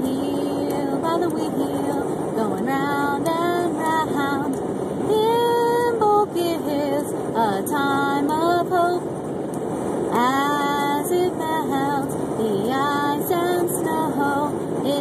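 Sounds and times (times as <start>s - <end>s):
woman singing unaccompanied: 0.0s - 9.0s, 10.1s - 15.0s
car road noise: 0.0s - 15.0s.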